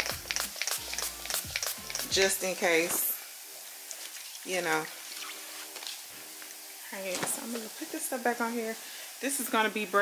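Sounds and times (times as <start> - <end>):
spray bottle squirting: 0.0 - 2.3.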